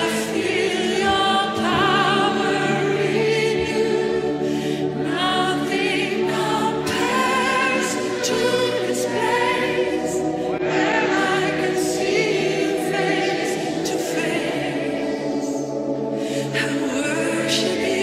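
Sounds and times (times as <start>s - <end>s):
choir singing worship song: 0.0s - 18.0s
sustained chords: 0.0s - 18.0s.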